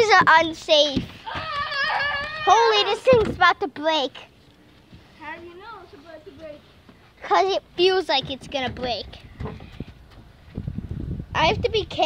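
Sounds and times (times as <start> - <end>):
dull knocks: 8.1 - 10.3
microphone handling noise: 8.2 - 11.7
low wind rumble on microphone: 8.4 - 12.0.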